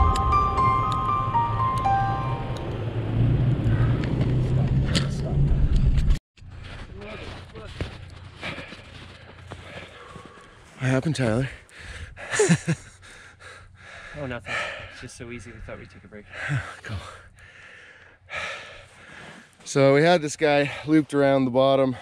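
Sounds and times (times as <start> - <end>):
background music: 0.0 - 3.4
truck engine rumbling: 0.0 - 9.2.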